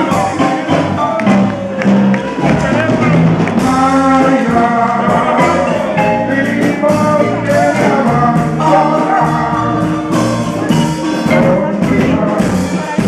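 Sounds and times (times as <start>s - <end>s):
marimba: 0.0s - 13.0s
man singing into a microphone: 3.6s - 10.2s, 11.2s - 13.0s.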